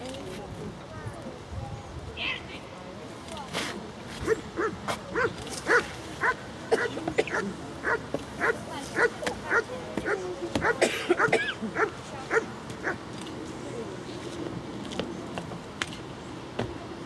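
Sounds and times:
dog barking: 0:04.6 - 0:09.6, 0:10.6 - 0:13.0.

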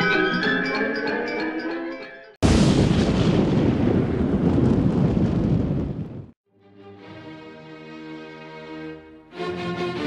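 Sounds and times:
explosion sound effect: 0:02.4 - 0:06.4
soft music: 0:06.5 - 0:10.0.

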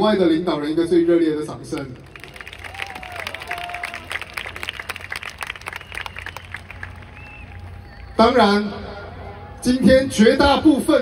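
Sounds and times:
large crowd applauding: 0:01.8 - 0:08.2.

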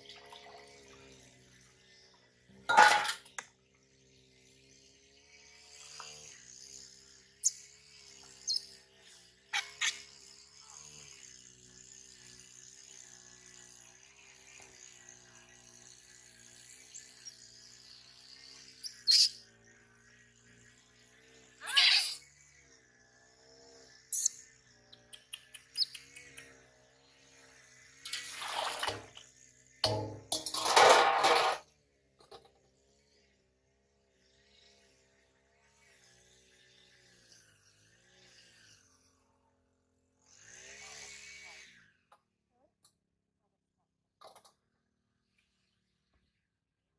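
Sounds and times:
water splashing in a steel basin: 0:00.0 - 0:00.7, 0:28.1 - 0:29.2, 0:29.8 - 0:31.6
faint high chirping: 0:08.4 - 0:08.7, 0:24.1 - 0:26.4.

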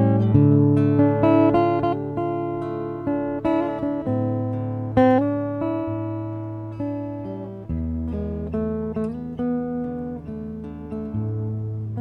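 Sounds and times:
fingerstyle acoustic guitar: 0:00.0 - 0:12.0.

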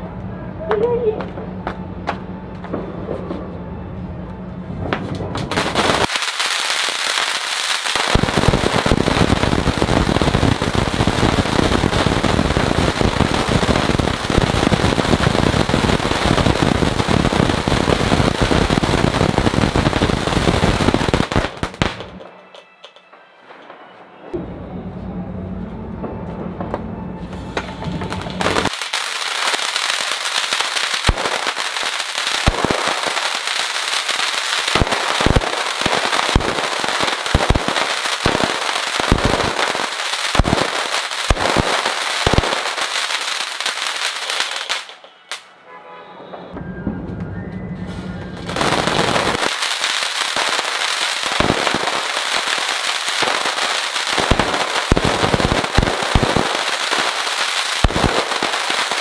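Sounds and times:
fountain firework hissing and crackling: 0:05.4 - 0:22.1, 0:27.4 - 0:45.0, 0:48.3 - 0:59.0.

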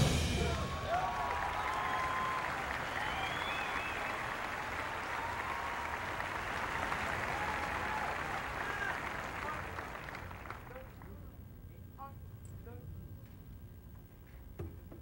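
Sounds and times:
brass and drums: 0:00.0 - 0:01.2
crowd applauding and cheering: 0:00.0 - 0:11.2
crowd whistles: 0:00.3 - 0:10.6.

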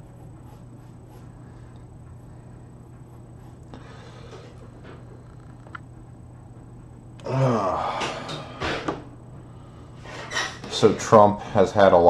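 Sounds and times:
steady low hum: 0:00.0 - 0:12.0
man sighing: 0:07.2 - 0:08.9.

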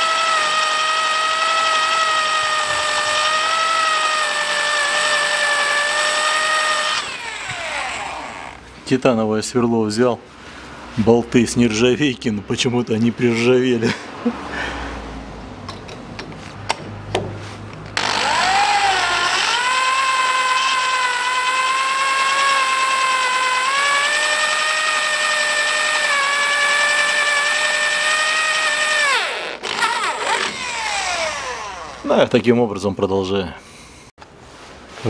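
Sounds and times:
electric drill whining: 0:00.0 - 0:08.7, 0:18.0 - 0:32.1.

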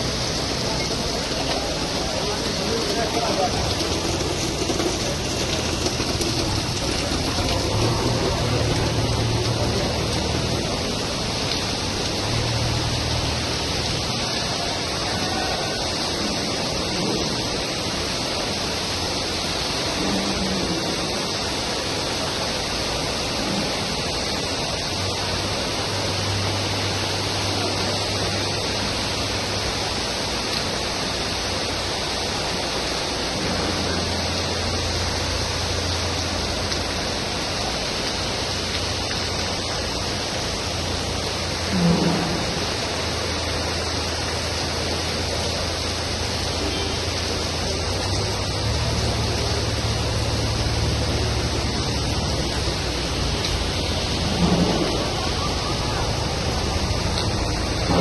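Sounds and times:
heavy rain falling: 0:00.0 - 0:58.0.

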